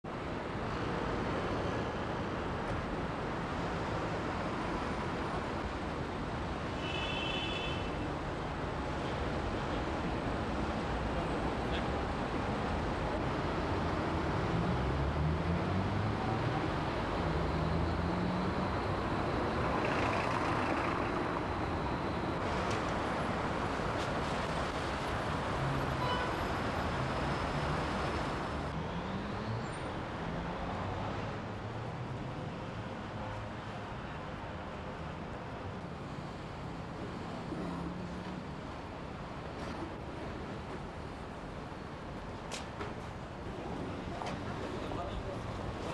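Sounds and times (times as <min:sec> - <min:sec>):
road traffic noise: 0:00.0 - 0:45.9.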